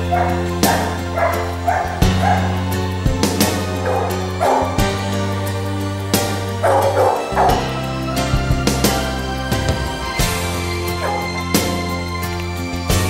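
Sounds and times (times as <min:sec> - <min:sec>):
background music with a beat: 0:00.0 - 0:13.0
puppy yipping: 0:00.1 - 0:02.6, 0:03.8 - 0:04.8, 0:06.6 - 0:07.7, 0:11.0 - 0:11.4.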